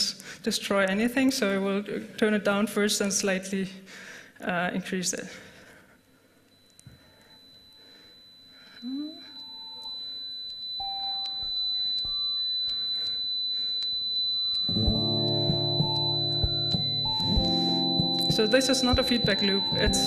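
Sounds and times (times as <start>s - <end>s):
steady high-pitched tone: 6.5s - 20.0s
muffled chiptune and guitar song: 14.7s - 20.0s.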